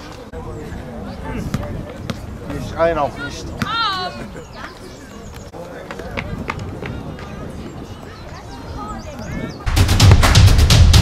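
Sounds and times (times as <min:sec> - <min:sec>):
loud music with heavy drums: 0:09.7 - 0:11.0.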